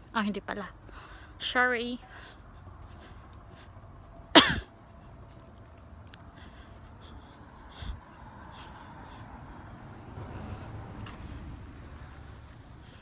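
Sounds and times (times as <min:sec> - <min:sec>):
light footsteps on road: 0:00.0 - 0:13.0
road traffic rumble: 0:00.0 - 0:13.0.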